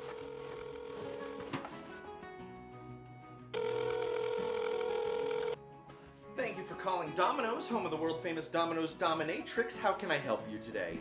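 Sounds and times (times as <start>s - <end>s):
telephone ring tone: 0.0s - 1.4s, 3.5s - 5.6s
quiet background music: 0.0s - 11.0s.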